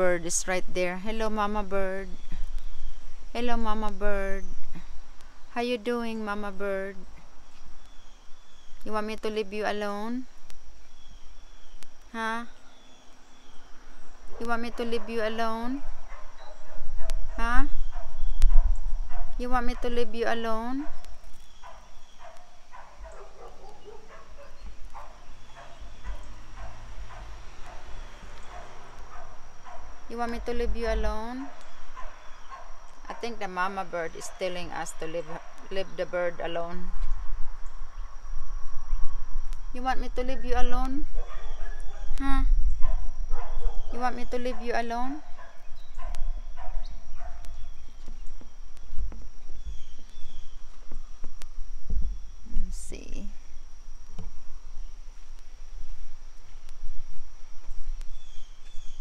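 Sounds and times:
low rumbling microphone noise: 0.0s - 59.0s
faint bird chirps: 1.1s - 51.2s, 57.6s - 59.0s.

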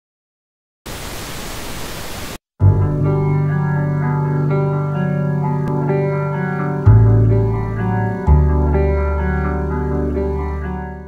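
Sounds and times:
tv static hiss: 0.9s - 2.4s.

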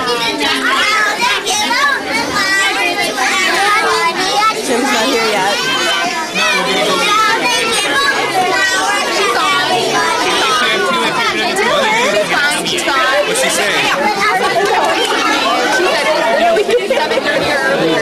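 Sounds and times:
children babbling: 0.0s - 18.0s.

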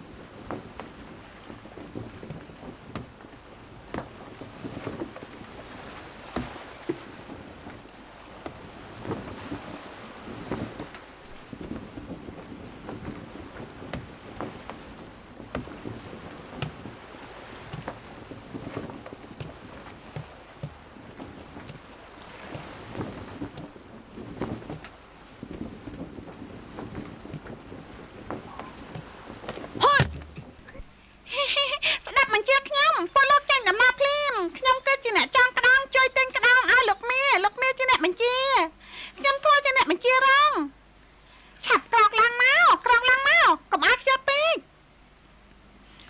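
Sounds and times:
wooden ship knocking and creaking: 0.0s - 31.0s
water noise: 0.0s - 46.0s
wind: 0.0s - 46.0s.

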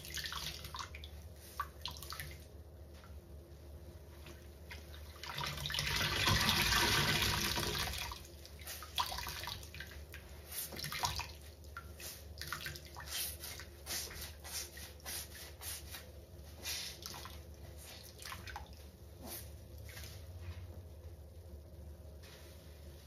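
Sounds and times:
water dripping: 0.0s - 2.5s.

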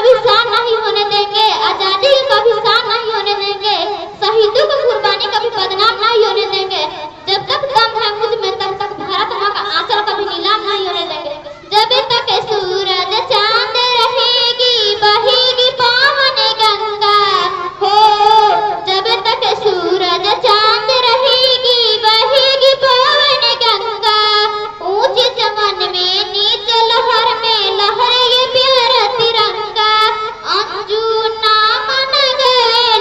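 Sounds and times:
girl singing into microphone: 0.0s - 33.0s.

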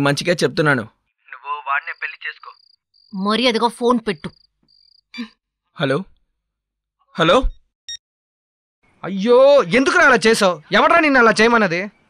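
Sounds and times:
person talking on phone: 1.3s - 2.6s
crickets chirping: 1.6s - 5.3s.

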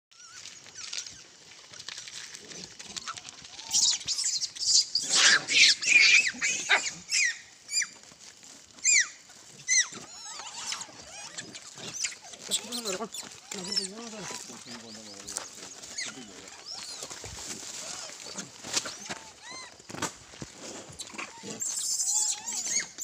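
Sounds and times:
monkeys screeching: 2.8s - 8.0s, 8.8s - 19.8s, 21.0s - 23.0s
short high monkey squeals: 3.0s - 8.0s, 8.8s - 13.8s, 17.8s - 19.7s, 21.0s - 23.0s.

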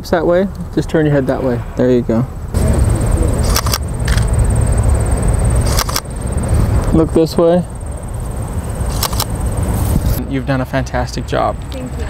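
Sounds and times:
faint high whine: 0.0s - 8.9s
steady low rumble: 0.0s - 11.6s
camera shutter clicks: 3.4s - 4.3s, 5.7s - 6.1s, 8.9s - 9.3s.

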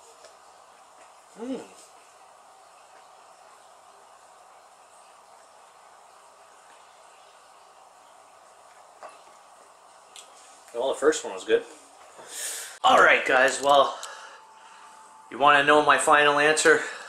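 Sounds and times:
faint room hiss: 0.0s - 17.0s.

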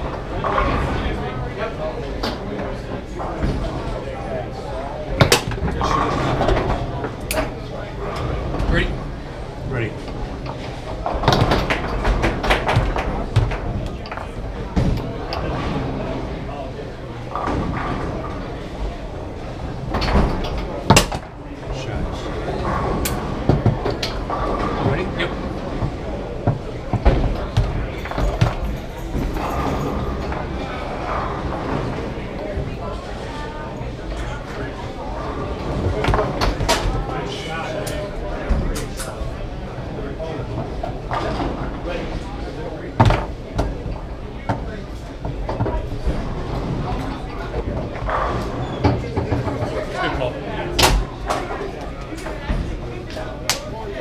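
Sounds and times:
murmur of voices: 0.0s - 54.0s
foosball rods knocking: 5.1s - 9.1s, 10.0s - 16.0s, 19.6s - 21.4s, 22.3s - 32.2s, 35.4s - 37.3s, 42.9s - 49.9s
foosball ball clacks: 5.2s - 8.7s, 10.0s - 16.0s, 19.7s - 21.4s, 22.4s - 32.1s, 35.4s - 39.0s.

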